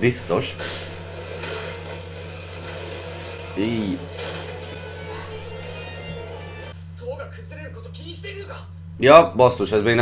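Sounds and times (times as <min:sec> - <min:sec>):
steady low hum: 0:00.0 - 0:10.0
soundtrack music: 0:01.0 - 0:06.8.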